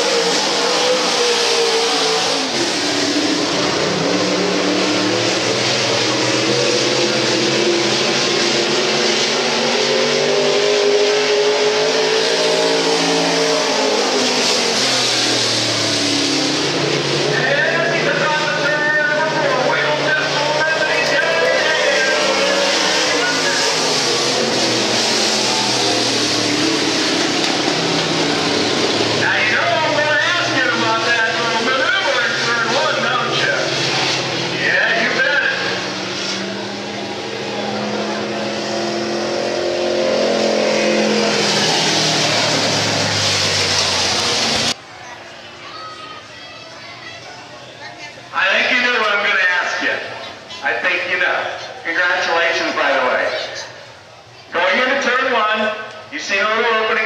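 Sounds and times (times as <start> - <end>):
loud steady roar: 0.0 - 57.0
race car engines: 0.0 - 57.0.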